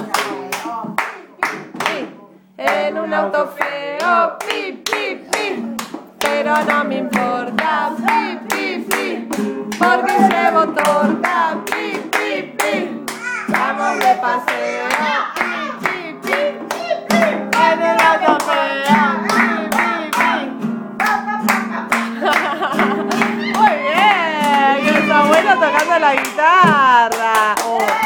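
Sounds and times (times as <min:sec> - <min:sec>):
voices singing a children's song: 0:00.0 - 0:28.0
hands clapping in time: 0:03.6 - 0:28.0
guitar strumming: 0:05.5 - 0:27.2.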